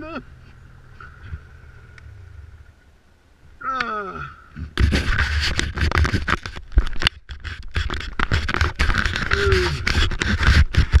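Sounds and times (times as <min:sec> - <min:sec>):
clothing rubbing against microphone: 0:04.6 - 0:11.0.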